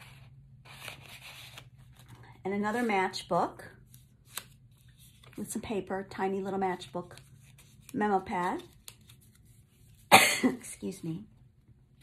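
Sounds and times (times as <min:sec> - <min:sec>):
paper pages rustling: 0:00.0 - 0:03.2, 0:03.8 - 0:05.6, 0:06.7 - 0:10.1.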